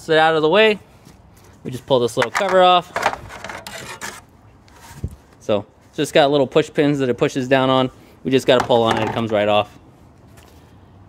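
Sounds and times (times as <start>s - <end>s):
plastic scraping and rubbing: 2.2s - 5.2s.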